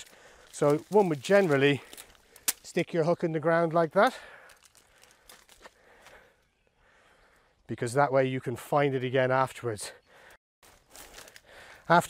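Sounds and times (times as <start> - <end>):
dry reed stalks crunching: 0.0 - 6.4, 10.6 - 12.0.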